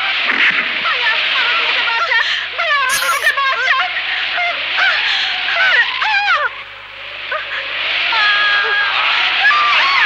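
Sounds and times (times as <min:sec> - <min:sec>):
high-pitched voices crying out: 0:02.9 - 0:03.4.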